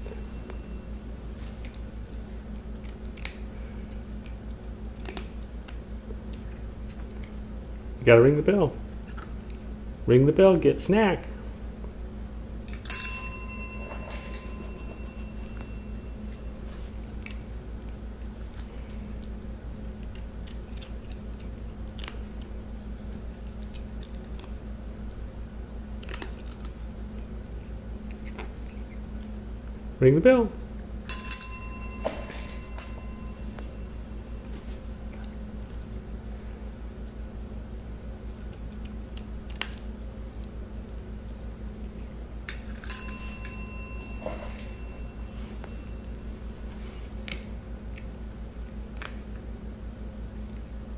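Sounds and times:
steady low hum: 0.0s - 50.9s
light taps on bell: 12.8s - 15.9s, 31.1s - 33.8s, 42.5s - 45.8s
service bell ding: 12.9s - 16.1s, 31.1s - 33.9s, 42.8s - 46.0s.

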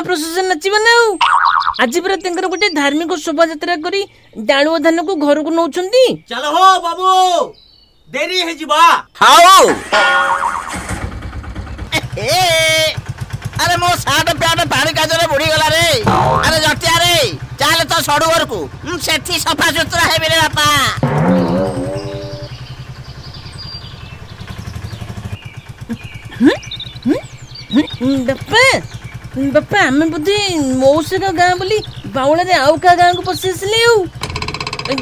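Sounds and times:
starter whine: 9.7s - 35.0s
engine running with low chug: 10.6s - 35.0s.

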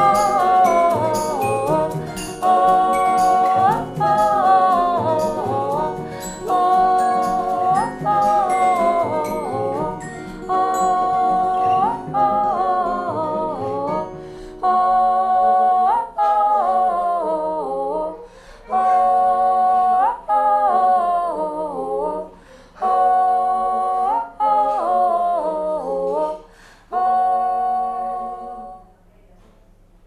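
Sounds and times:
woman humming a melody: 0.0s - 29.0s
breaths: 14.2s - 14.6s, 18.2s - 18.7s, 22.3s - 22.8s, 26.4s - 26.9s.

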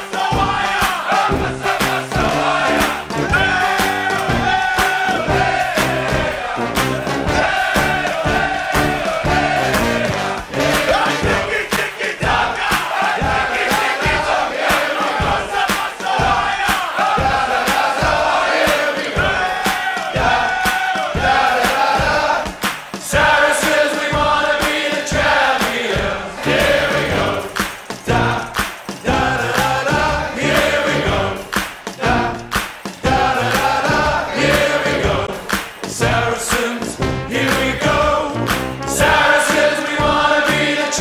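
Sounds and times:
crowd cheering and shouting: 0.0s - 23.5s
music with steady beat: 0.0s - 41.0s.

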